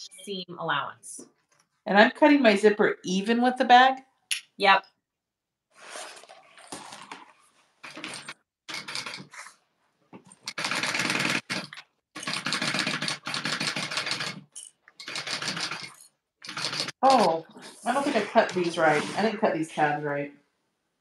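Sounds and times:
industrial sewing machine stitching: 0:07.8 - 0:09.3, 0:10.4 - 0:17.0.

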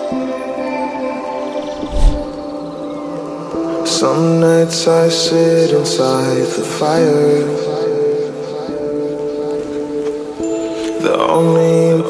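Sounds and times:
music with sustained notes: 0:00.0 - 0:12.0.

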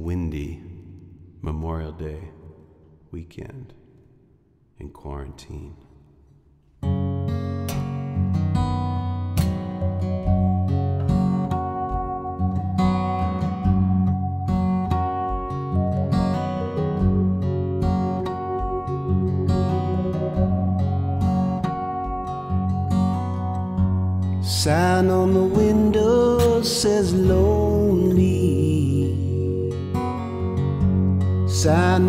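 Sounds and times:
acoustic guitar strumming: 0:06.8 - 0:32.0
held organ notes: 0:09.8 - 0:32.0.

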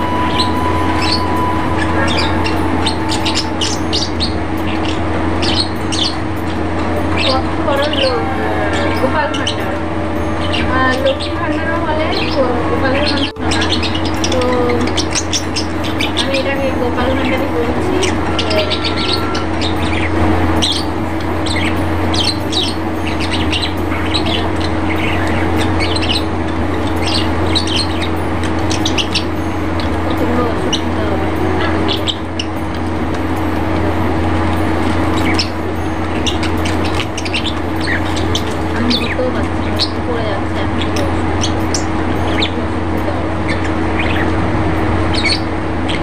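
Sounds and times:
birds chirping: 0:00.0 - 0:46.0
steady low hum: 0:00.0 - 0:46.0.

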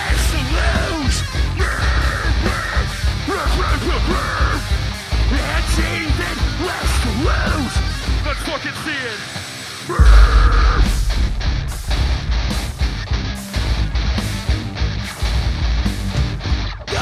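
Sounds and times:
heavy rock band playing: 0:00.0 - 0:09.0, 0:10.0 - 0:17.0.

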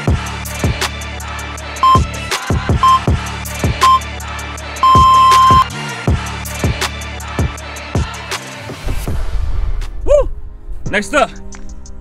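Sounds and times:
background music with bass drum: 0:00.0 - 0:12.0
long electronic beep: 0:01.8 - 0:02.1, 0:02.8 - 0:03.1, 0:03.8 - 0:04.1, 0:04.8 - 0:05.7.

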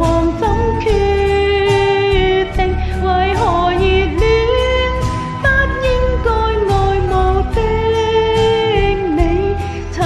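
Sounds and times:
pop backing track with drums: 0:00.0 - 0:10.0
woman singing ballad: 0:00.0 - 0:10.0.

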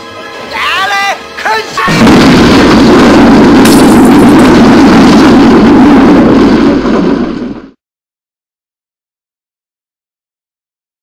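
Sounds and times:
explosion rumble: 0:01.9 - 0:07.8.

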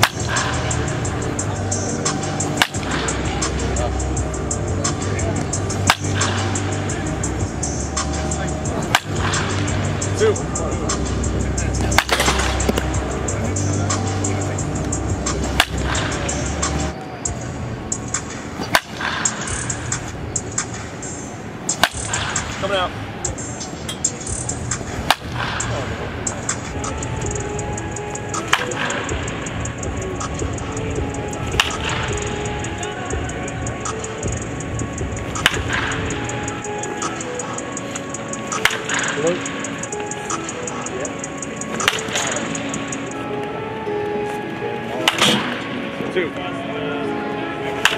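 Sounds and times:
baseball bat hitting ball: 0:00.0 - 0:00.7, 0:02.0 - 0:03.6, 0:05.8 - 0:06.6, 0:08.0 - 0:09.8, 0:11.8 - 0:13.1, 0:15.3 - 0:16.8, 0:18.2 - 0:20.0, 0:21.7 - 0:22.7, 0:23.8 - 0:27.0, 0:28.4 - 0:29.2, 0:31.5 - 0:32.2, 0:35.3 - 0:36.1, 0:38.5 - 0:39.4, 0:41.7 - 0:42.6, 0:45.0 - 0:45.7
background music with steady beat: 0:00.0 - 0:47.9.

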